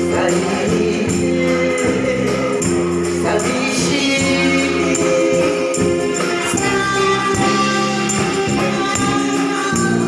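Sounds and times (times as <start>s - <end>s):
amplified instrumental accompaniment: 0.0s - 10.0s
woman singing through microphone: 0.0s - 10.0s.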